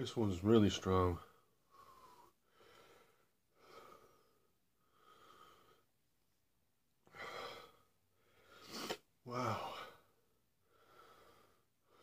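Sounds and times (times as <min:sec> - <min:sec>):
man breathing heavily: 0:01.3 - 0:05.9, 0:07.0 - 0:12.0.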